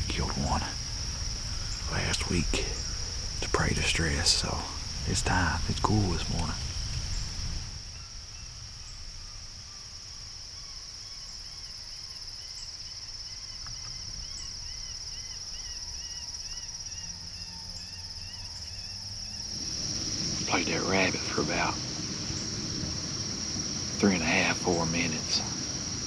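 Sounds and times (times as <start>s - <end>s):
insect chorus: 0.0s - 26.0s.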